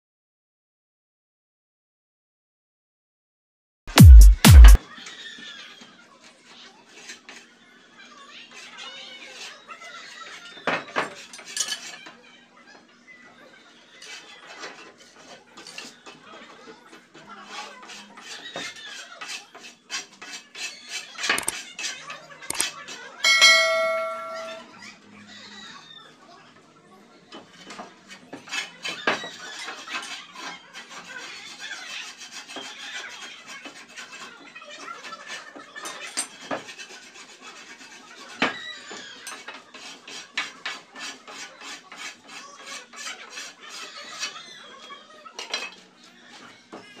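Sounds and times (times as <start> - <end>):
bell-like chime: 23.3 - 24.6.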